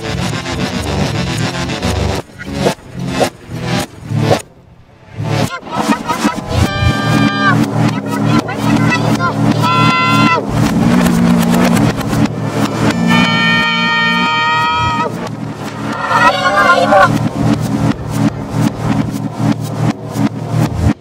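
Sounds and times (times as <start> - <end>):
low electronic hum: 0.8 - 21.0
wavering warble: 5.1 - 20.0
pitch-shifted voice holding notes: 5.2 - 17.8.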